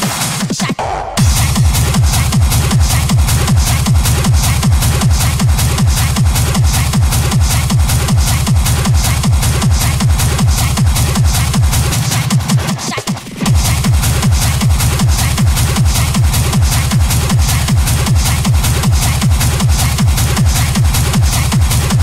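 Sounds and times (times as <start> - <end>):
techno kick drum: 0.0 - 22.0.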